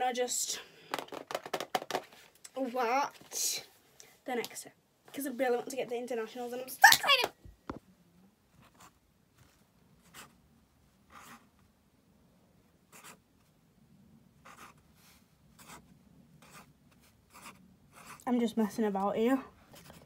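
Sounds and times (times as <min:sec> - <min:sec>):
pen scratching on paper: 0:10.0 - 0:10.4, 0:11.1 - 0:11.5, 0:12.9 - 0:13.2, 0:14.4 - 0:14.8, 0:15.5 - 0:18.2, 0:19.7 - 0:20.0.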